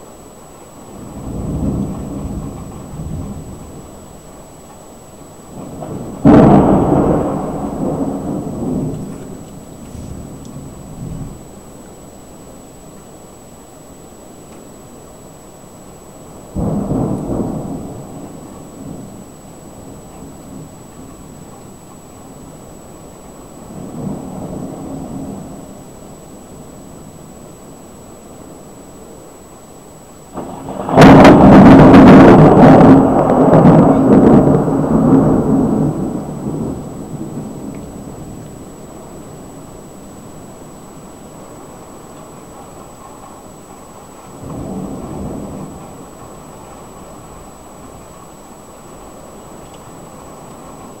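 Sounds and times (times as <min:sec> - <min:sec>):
thunder clap and rumble: 0:00.9 - 0:11.8, 0:16.4 - 0:27.2, 0:30.3 - 0:51.0
loud close thunder crack: 0:01.0 - 0:04.3, 0:05.5 - 0:11.6, 0:16.5 - 0:21.4, 0:23.6 - 0:25.9, 0:30.3 - 0:42.4, 0:44.4 - 0:47.6.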